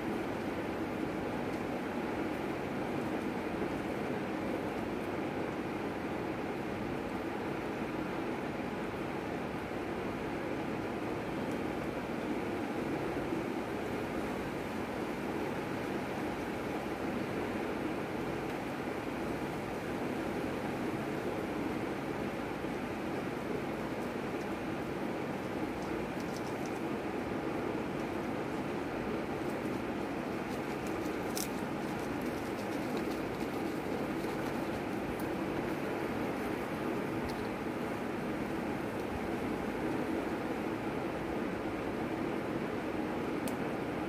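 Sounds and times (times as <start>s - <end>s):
background hum: 0.0s - 44.0s
steady rushing noise: 22.9s - 40.5s.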